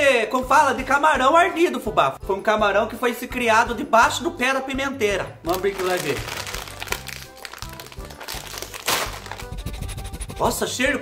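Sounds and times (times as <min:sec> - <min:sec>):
background music: 0:00.0 - 0:11.0
foil bag ripping: 0:05.5 - 0:09.6
foil snack bag crinkling: 0:05.5 - 0:09.6.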